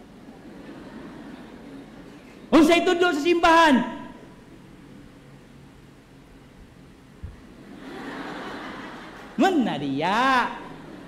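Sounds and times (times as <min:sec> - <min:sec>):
congregation laughing: 0:00.3 - 0:02.5, 0:07.6 - 0:09.6, 0:10.4 - 0:11.0.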